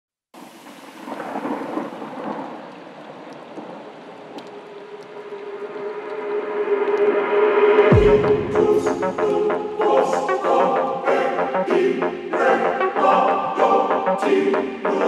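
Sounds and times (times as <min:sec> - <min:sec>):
rain hiss: 0:00.4 - 0:07.3
thunder rumble: 0:00.6 - 0:08.8.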